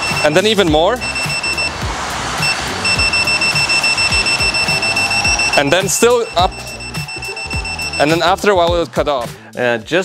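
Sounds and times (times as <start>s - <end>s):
high-pitched alarm beeping: 0.0s - 1.8s, 2.4s - 8.4s
background music with steady beat: 0.0s - 10.0s.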